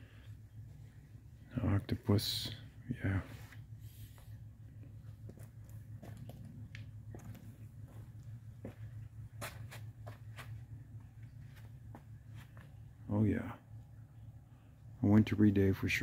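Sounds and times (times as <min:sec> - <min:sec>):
steady low hum: 0:00.0 - 0:16.0
footsteps on wood chips: 0:07.1 - 0:10.6.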